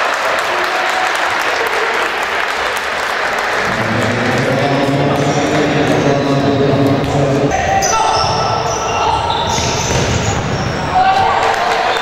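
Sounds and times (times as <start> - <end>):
players shouting: 0.4 - 12.0
shoes squeaking on wooden court: 5.1 - 11.0.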